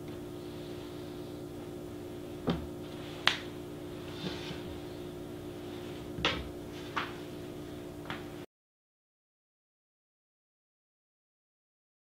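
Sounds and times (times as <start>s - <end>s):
low electrical hum: 0.0s - 8.5s.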